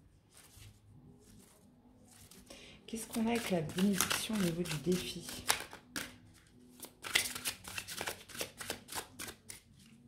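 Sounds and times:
cards being shuffled by hand: 0.3 - 10.0.

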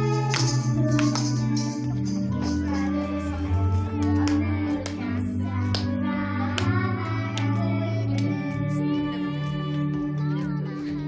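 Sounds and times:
girls singing into microphones: 0.0 - 11.0
pop backing track: 0.0 - 11.0.

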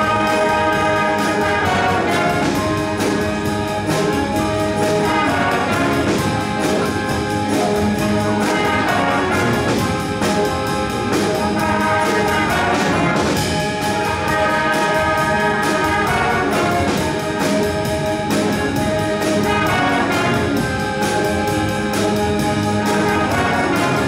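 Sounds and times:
drum kit beat: 0.0 - 24.0
trumpet section playing: 0.0 - 24.0.

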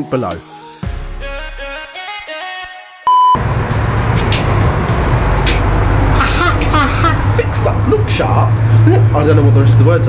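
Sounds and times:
electronic test tone beep: 3.1 - 3.4
street traffic rumble: 3.4 - 10.0.

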